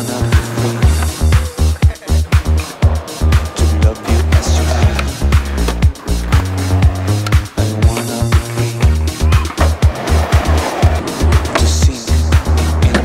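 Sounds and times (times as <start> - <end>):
music with drum beat and bass: 0.0 - 13.0.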